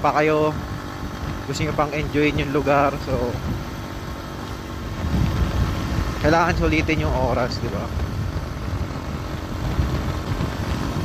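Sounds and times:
motorcycle engine rumbling: 0:00.0 - 0:11.0
wind noise: 0:00.0 - 0:11.0.

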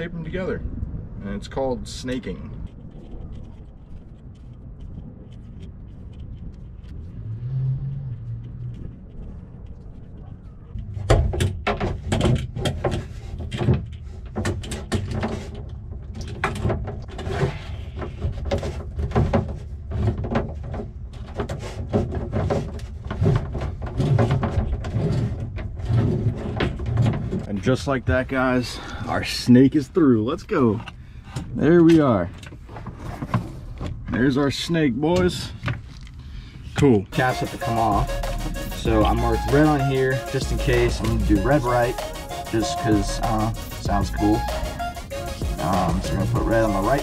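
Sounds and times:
hoses knocking and scraping: 0:01.9 - 0:28.4, 0:30.5 - 0:34.4, 0:35.1 - 0:47.0.

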